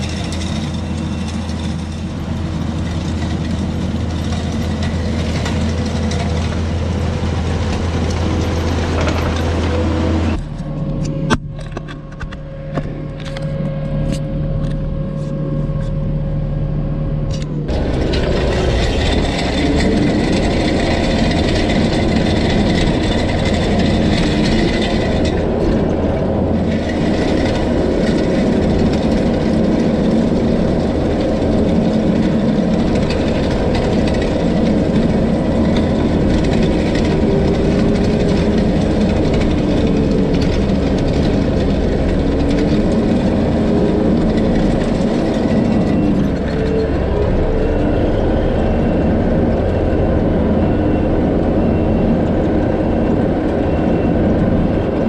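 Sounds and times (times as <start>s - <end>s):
grinding gravel: 0.0s - 10.9s, 17.7s - 50.3s
skid steer engine running: 0.0s - 55.0s
clicks and rattles: 17.3s - 47.4s.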